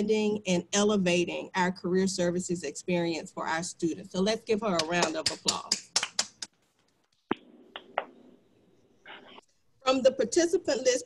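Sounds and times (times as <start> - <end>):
sharp hand claps: 4.8 - 6.5, 7.3 - 8.2.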